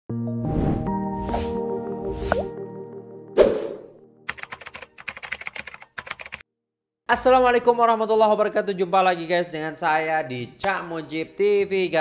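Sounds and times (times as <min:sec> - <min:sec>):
keyboard typing: 0:04.3 - 0:06.4.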